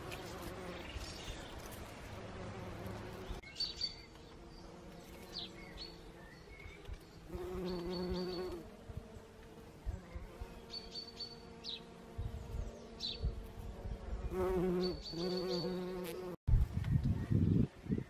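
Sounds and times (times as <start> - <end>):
bumblebee buzzing in flight: 0.0 - 16.7.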